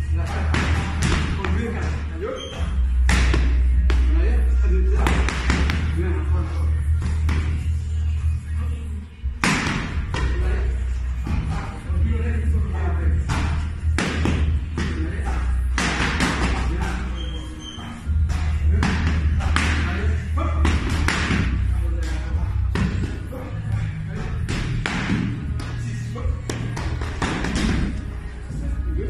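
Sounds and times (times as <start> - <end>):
boxing gloves striking mitts: 3.0 - 4.1, 5.1 - 5.9, 9.4 - 10.4, 13.2 - 17.0, 18.1 - 19.9, 20.6 - 21.6, 24.3 - 25.8, 26.4 - 28.0.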